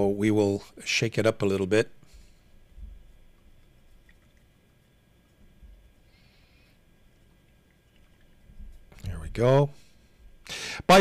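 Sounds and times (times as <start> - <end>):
liquid swishing in bottle: 2.9 - 6.1.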